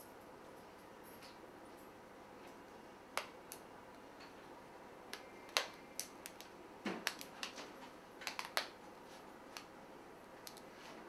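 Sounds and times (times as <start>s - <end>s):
hair band clicks: 8.2s - 8.8s.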